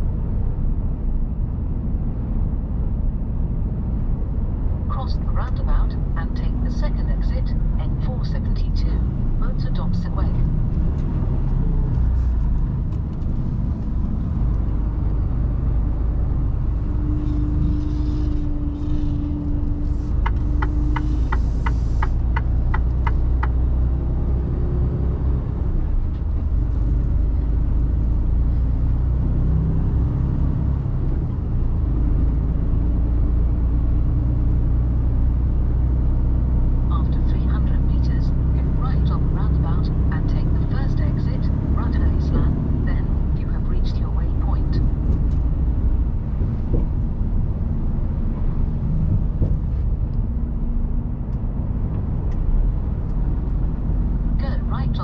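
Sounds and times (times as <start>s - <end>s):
road noise: 0.0s - 55.0s
truck diesel engine: 0.0s - 55.0s
turn signal ticking: 19.4s - 24.0s.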